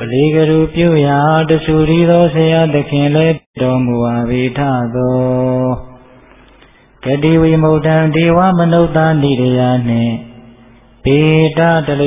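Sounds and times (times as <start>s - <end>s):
man chanting: 0.0s - 6.2s, 7.0s - 12.0s.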